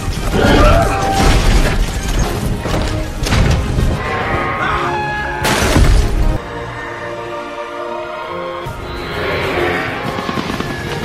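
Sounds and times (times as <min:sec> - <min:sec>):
orchestral score: 0:00.0 - 0:11.0
flock of wings rushing and crackling: 0:09.5 - 0:11.0.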